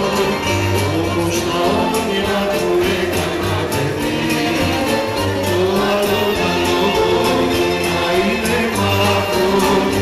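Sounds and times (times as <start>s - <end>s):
band with steady beat: 0.0s - 10.0s
people singing together: 0.0s - 10.0s.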